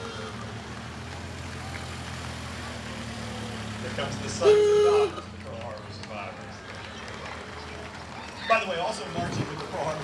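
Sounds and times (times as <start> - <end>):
street crowd noise: 0.0 - 10.0.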